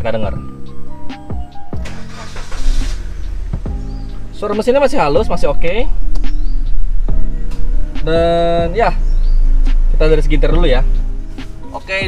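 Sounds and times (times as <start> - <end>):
car engine starting and idling: 1.4 - 12.0.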